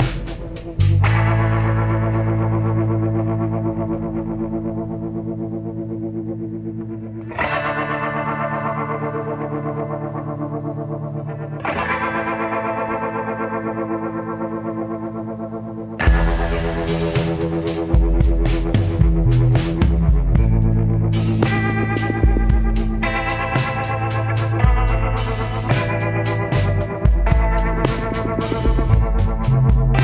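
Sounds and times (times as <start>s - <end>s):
instrumental music with held chords: 0.0s - 30.0s.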